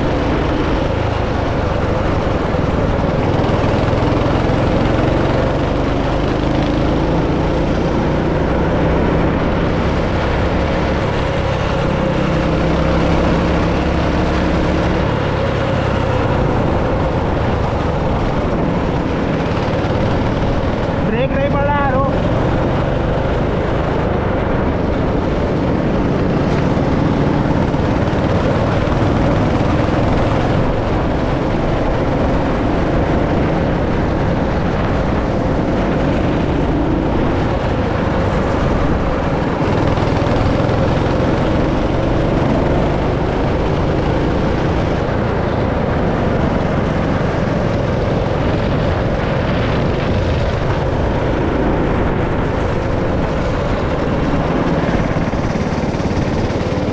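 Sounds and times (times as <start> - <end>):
go-kart engine running hard: 0.0 - 56.9.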